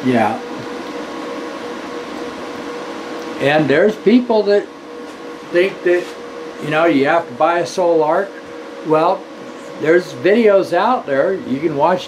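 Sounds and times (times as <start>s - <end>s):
inverter fan whirring: 0.0s - 12.0s
mid-pitched hum: 0.0s - 12.0s.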